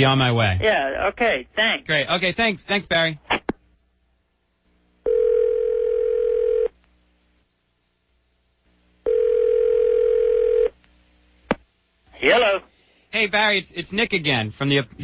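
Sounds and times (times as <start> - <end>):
telephone ringback tone: 5.0 - 6.7, 9.0 - 10.7.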